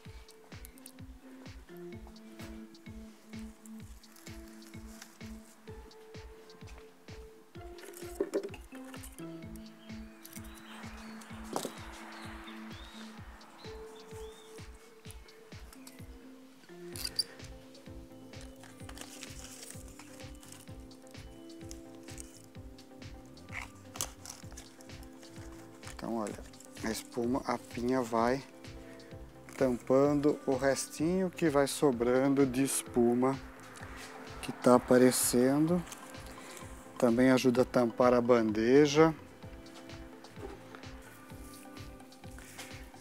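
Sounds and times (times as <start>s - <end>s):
background music with beat: 0.0s - 43.0s
pine branches rustling: 2.2s - 5.7s, 10.2s - 22.6s, 23.2s - 31.9s, 32.5s - 37.1s.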